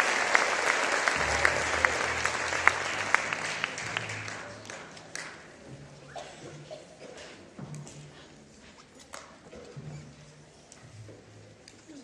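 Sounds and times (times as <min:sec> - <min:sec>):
faint low drone: 0:01.1 - 0:04.6.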